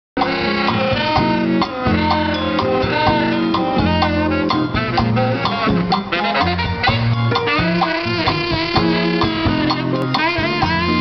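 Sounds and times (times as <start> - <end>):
saxophone solo: 0.2 - 11.0
steady drum beat: 0.2 - 11.0
sustained bass notes: 0.2 - 11.0.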